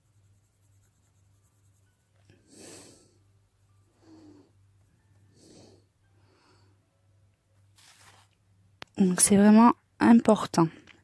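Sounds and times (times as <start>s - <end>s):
pencil scratching on paper: 0.0s - 2.8s
low steady hum: 0.0s - 11.0s.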